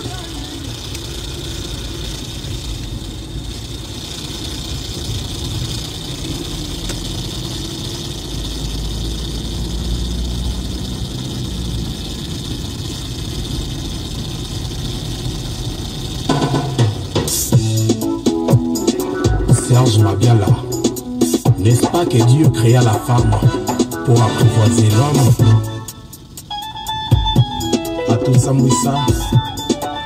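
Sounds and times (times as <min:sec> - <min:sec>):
car engine and road rumble: 0:00.0 - 0:30.0
music: 0:16.3 - 0:30.0.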